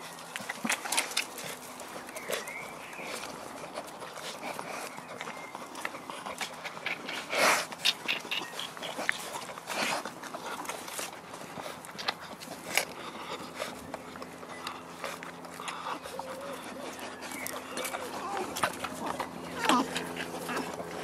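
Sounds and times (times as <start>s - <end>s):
puppies jostling and nursing: 0.0s - 21.0s
rustles and clicks: 0.0s - 21.0s
faint puppy whimpers: 14.4s - 21.0s.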